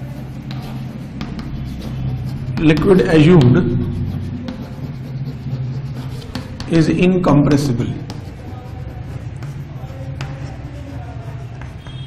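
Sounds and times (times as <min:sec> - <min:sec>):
low room hum: 0:00.0 - 0:11.7
chalk scratching on blackboard: 0:00.0 - 0:12.0.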